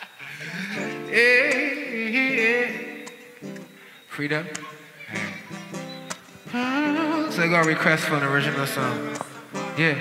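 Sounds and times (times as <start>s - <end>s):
person singing: 0.4s - 3.2s, 6.5s - 10.0s
acoustic guitar strumming: 0.4s - 10.0s.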